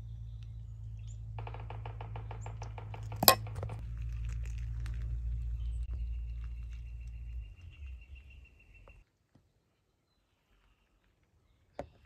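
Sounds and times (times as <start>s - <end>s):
spoon clinking against a pot: 3.2s - 3.8s.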